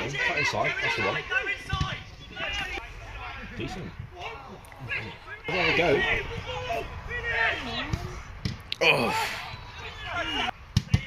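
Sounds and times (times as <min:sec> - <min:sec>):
men shouting: 0:00.0 - 0:07.8, 0:08.8 - 0:10.5.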